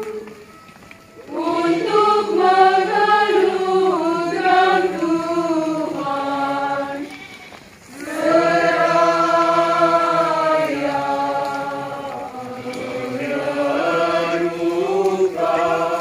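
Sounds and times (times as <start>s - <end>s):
crowd singing a hymn: 0.0s - 0.6s, 1.2s - 16.0s.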